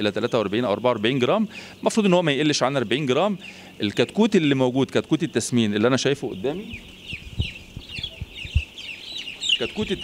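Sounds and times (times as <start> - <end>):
chicks peeping: 0.0 - 10.0
soft low thumps: 6.8 - 8.8.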